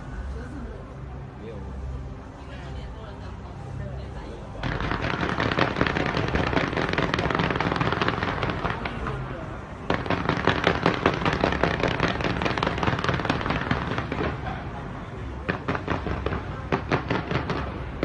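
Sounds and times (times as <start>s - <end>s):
fireworks crackling and banging: 4.6s - 18.0s.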